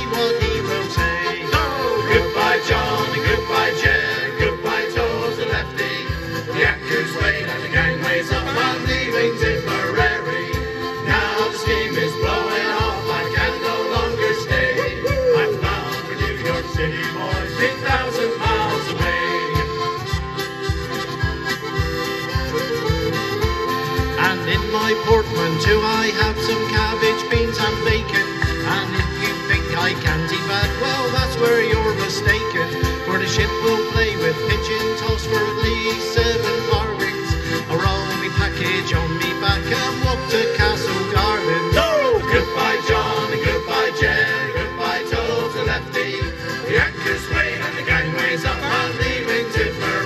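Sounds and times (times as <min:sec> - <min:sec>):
accordion playing folk tune: 0:00.0 - 0:50.0
acoustic guitar strumming: 0:00.0 - 0:50.0.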